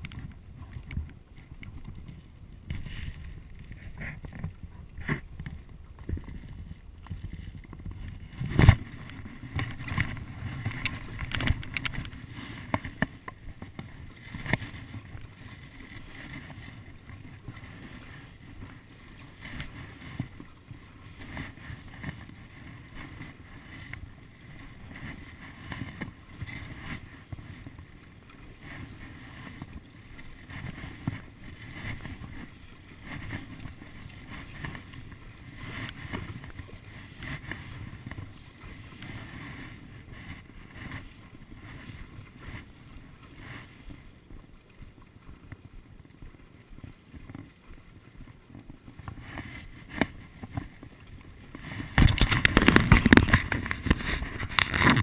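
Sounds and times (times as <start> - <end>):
paddle splashing through water: 0.0 - 55.0
water sloshing against board: 0.0 - 55.0
wind on microphone: 0.0 - 55.0.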